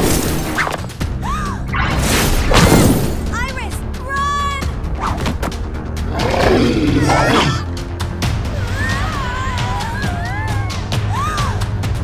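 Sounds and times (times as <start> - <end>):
background music: 0.0 - 12.0
cartoon monster roar: 6.1 - 7.7.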